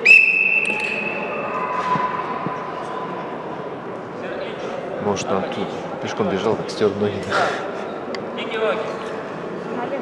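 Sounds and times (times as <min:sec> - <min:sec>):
sharp high whistle: 0:00.0 - 0:02.3
lower whistle tone: 0:00.0 - 0:02.4
sports hall murmur: 0:00.0 - 0:10.0.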